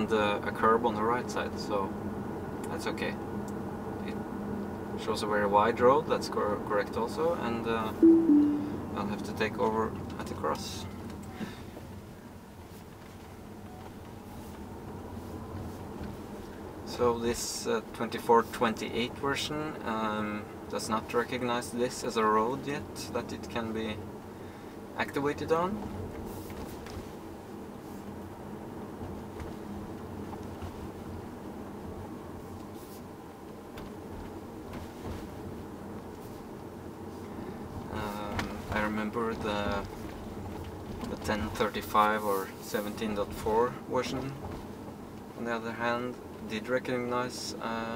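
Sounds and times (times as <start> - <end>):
road and tyre rumble: 25.7 - 45.5.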